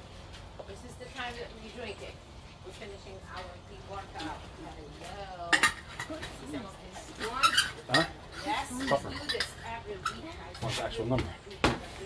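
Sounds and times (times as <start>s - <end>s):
voices talking: 0.6s - 12.0s.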